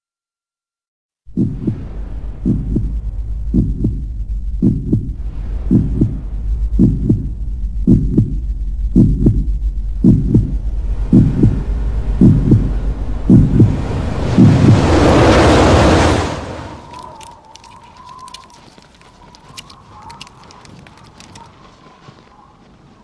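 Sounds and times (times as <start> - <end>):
heartbeat thumps: 1.3 - 15.1
low steady drone: 1.3 - 17.3
rushing swell: 1.7 - 18.3.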